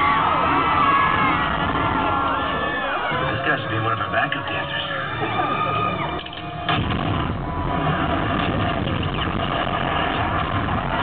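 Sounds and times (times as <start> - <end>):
fans screaming: 0.0 - 11.0
rumbling soundtrack over speakers: 0.0 - 11.0.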